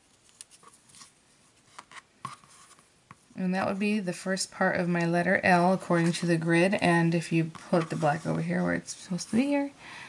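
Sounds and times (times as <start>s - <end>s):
threads rubbing and scraping: 0.0s - 2.9s, 5.5s - 9.7s.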